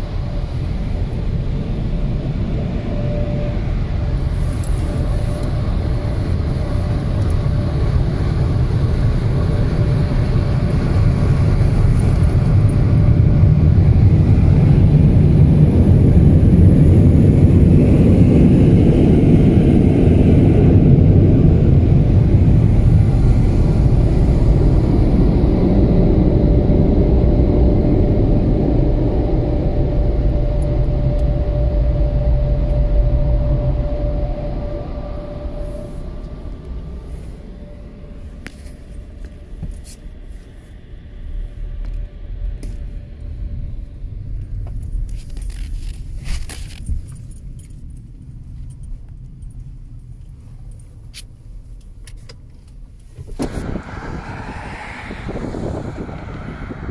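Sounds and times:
car wash air blowers rushing: 0:53.2 - 0:56.9.

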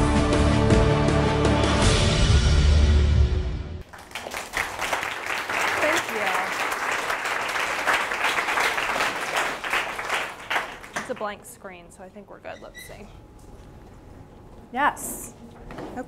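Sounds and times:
audience applauding: 0:03.8 - 0:11.3.

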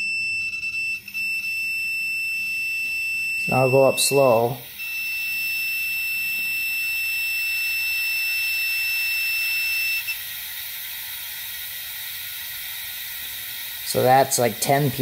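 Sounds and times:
multimeter continuity buzzer: 0:00.0 - 0:15.0
compressed air hissing: 0:03.9 - 0:15.0.

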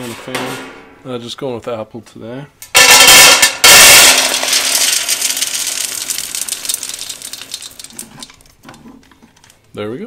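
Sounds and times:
pellets pouring into metal can: 0:02.8 - 0:08.4.

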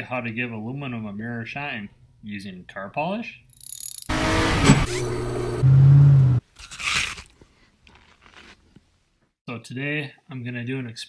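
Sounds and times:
lathe motor hum: 0:04.1 - 0:05.6
short crunch: 0:06.6 - 0:09.3.

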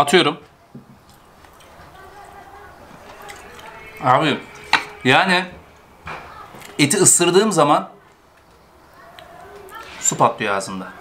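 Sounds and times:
man chewing food: 0:00.4 - 0:06.8.

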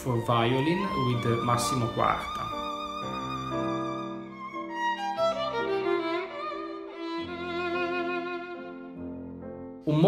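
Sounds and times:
solo violin melody: 0:00.0 - 0:09.6.

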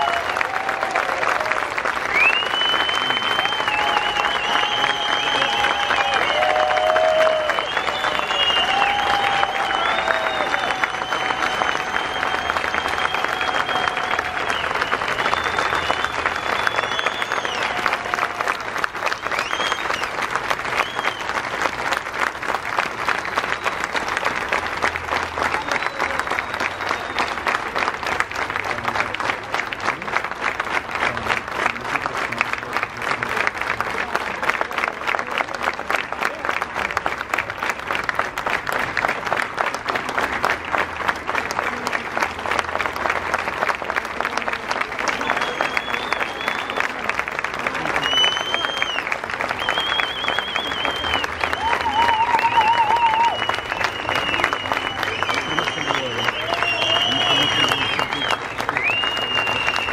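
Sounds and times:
crowd applauding: 0:00.0 - 0:59.9.

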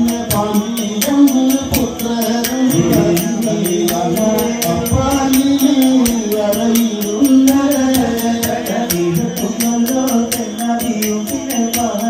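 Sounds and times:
person singing long bending notes: 0:00.0 - 0:12.0
rapid struck rhythm: 0:00.0 - 0:12.0.

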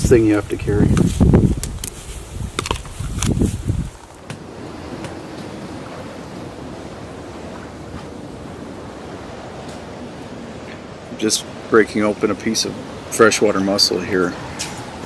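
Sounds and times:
wind rumble on microphone: 0:00.0 - 0:13.3
wind: 0:00.0 - 0:15.0.

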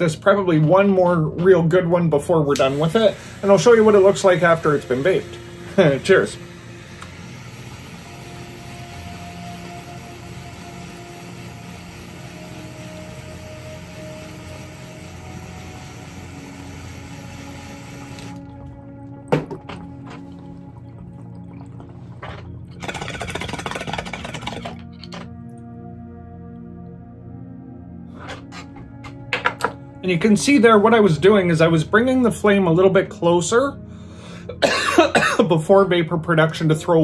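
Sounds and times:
torch flame hissing: 0:02.5 - 0:18.7
bong water bubbling: 0:19.2 - 0:25.0.

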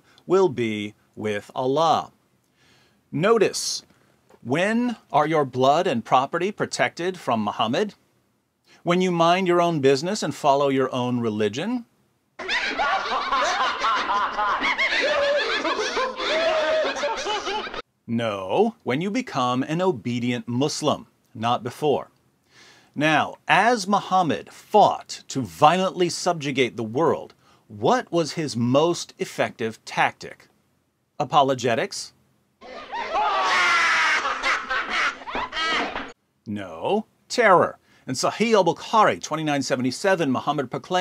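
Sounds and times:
man laughing hysterically: 0:12.4 - 0:17.8, 0:32.6 - 0:36.1.

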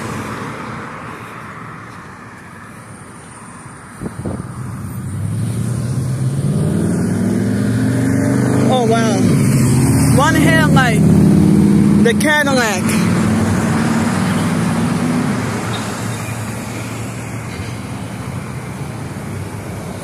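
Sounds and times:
car engines passing close: 0:00.0 - 0:20.0.

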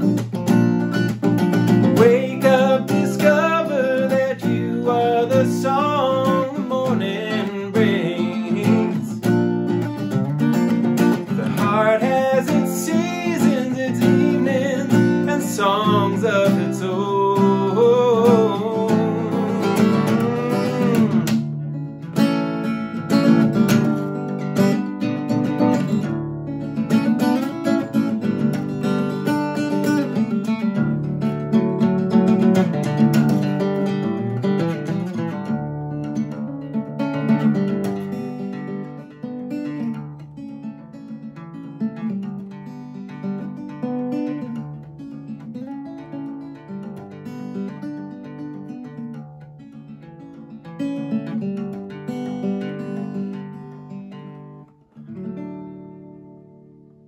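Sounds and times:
solo acoustic guitar: 0:00.0 - 0:57.0.

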